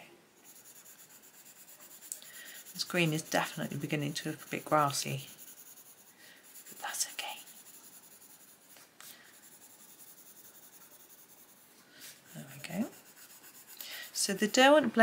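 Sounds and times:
pencil scratching on paper: 0.4 - 14.8.

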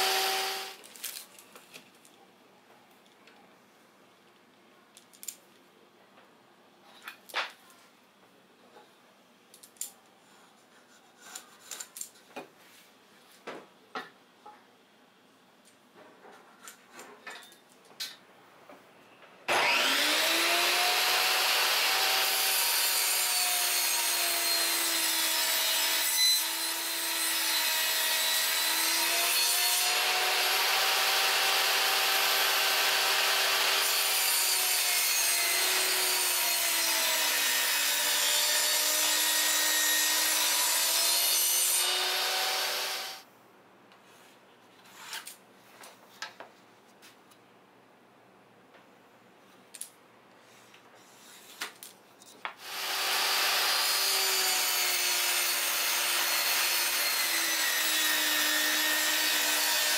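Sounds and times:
table saw cutting plywood: 0.0 - 0.8, 19.5 - 43.2, 52.6 - 59.9.

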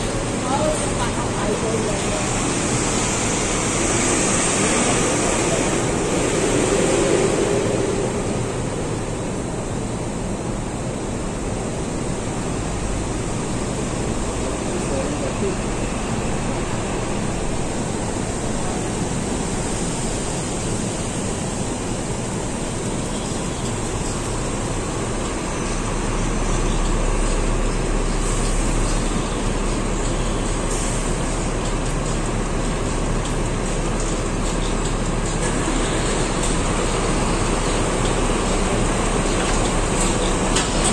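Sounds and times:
bus engine idling: 0.0 - 40.9
bus terminus noise: 0.0 - 40.9.

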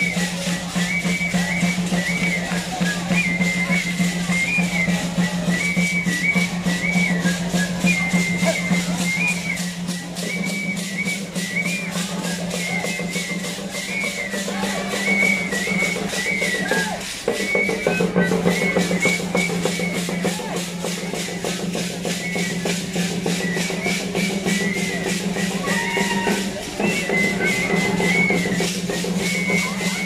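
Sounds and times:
shrill flute melody: 0.0 - 30.0
steady drumbeat: 0.0 - 30.0.

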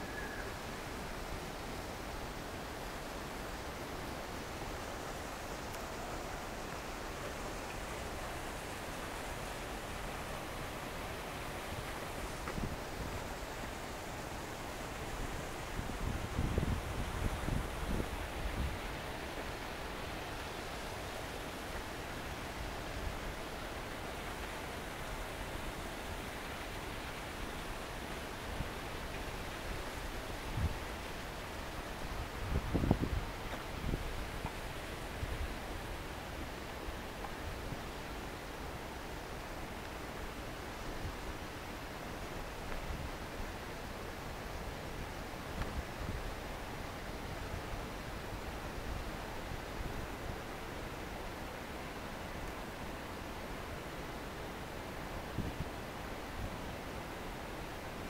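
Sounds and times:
outdoor hiss: 0.0 - 58.0
wind buffeting microphone: 15.2 - 18.8, 32.0 - 34.4.

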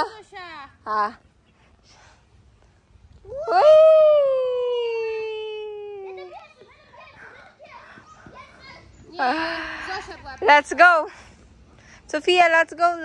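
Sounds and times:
faint scattered sounds: 5.4 - 13.0.

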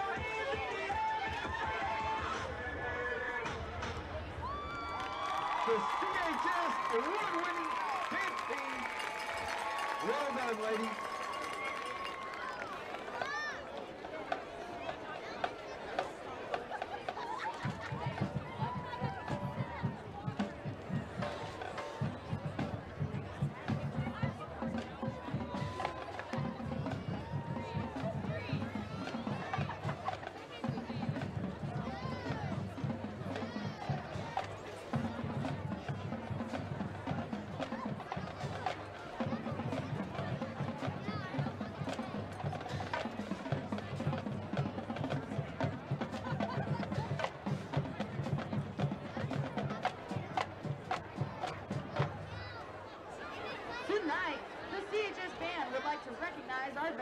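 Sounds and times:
crowd chatter: 0.0 - 57.0.

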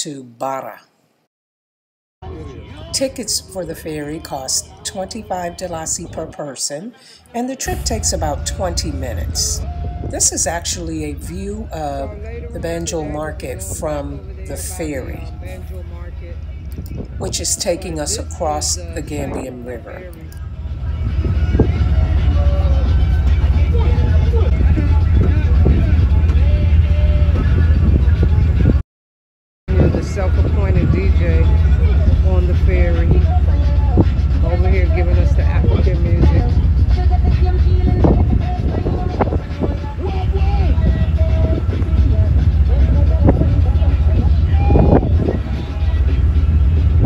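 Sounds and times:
people talking: 0.0 - 0.9, 2.2 - 16.3, 17.2 - 20.4, 29.7 - 39.8
faint voices: 2.2 - 28.6, 29.7 - 47.0
background music: 2.2 - 28.8, 29.7 - 47.0
ferry engine rumble: 7.6 - 28.8, 29.7 - 47.0.

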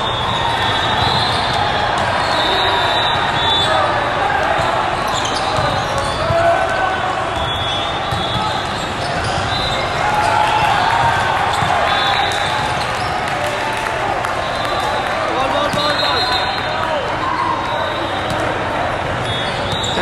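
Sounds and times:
volleyballs hit and bouncing: 0.0 - 17.1, 18.0 - 20.0
hubbub of voices: 0.0 - 20.0
shoes squeaking on court: 5.0 - 6.4, 7.4 - 13.2.

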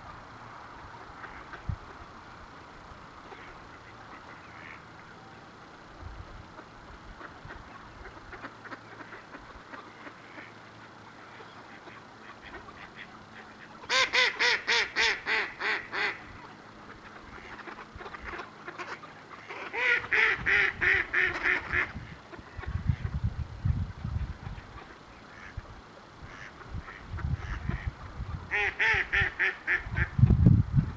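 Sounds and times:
ducks chuckling calls: 0.9 - 2.1, 3.2 - 5.2, 6.4 - 30.2
loud duck quacks: 11.4 - 23.1, 26.2 - 27.9, 28.5 - 30.2.

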